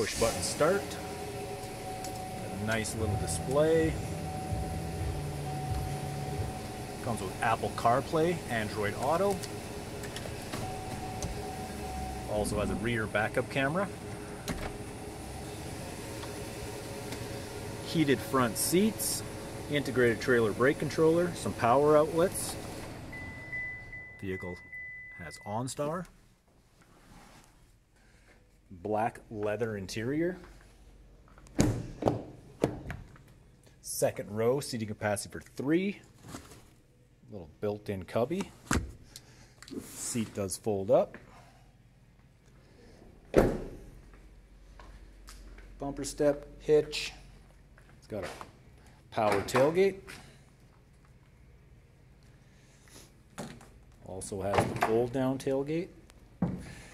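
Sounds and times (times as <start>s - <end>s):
vehicle cabin hiss and hum: 0.0s - 25.1s.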